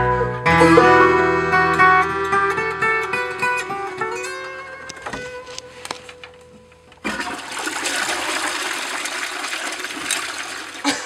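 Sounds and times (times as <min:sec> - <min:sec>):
toilet flushing: 0:07.0 - 0:11.0.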